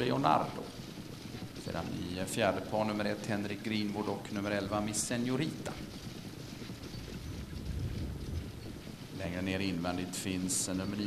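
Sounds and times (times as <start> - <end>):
rumble of trotting horses and sulkies: 0.0 - 11.0
wind on microphone: 6.7 - 10.2.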